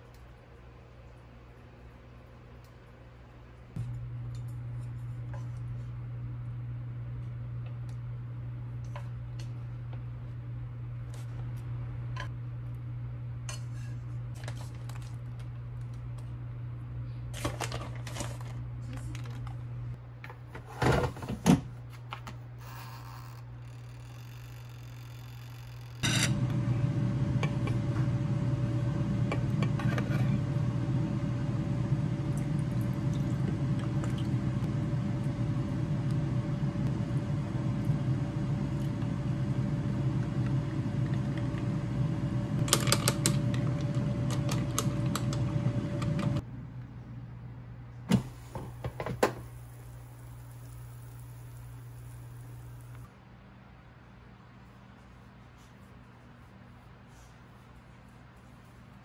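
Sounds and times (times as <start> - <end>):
air fryer fan whirring: 22.6 - 46.8, 48.0 - 53.1.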